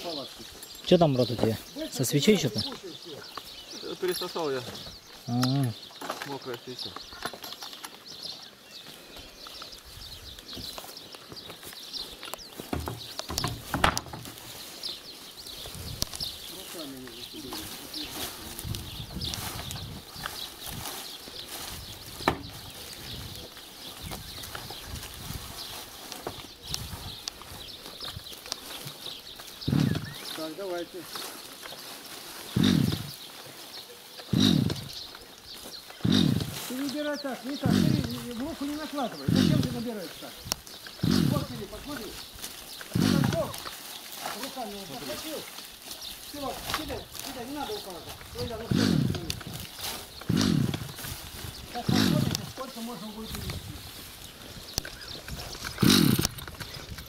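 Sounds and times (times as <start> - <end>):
small birds chirping: 0.0 - 57.0.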